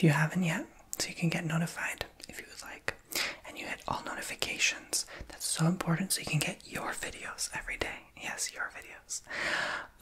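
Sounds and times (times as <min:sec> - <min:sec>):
man whispering: 0:00.5 - 0:09.3.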